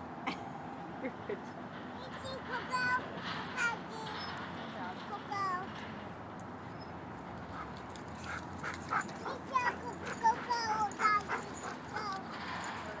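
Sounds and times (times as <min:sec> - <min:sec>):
dog whining and yipping: 0:08.6 - 0:12.3.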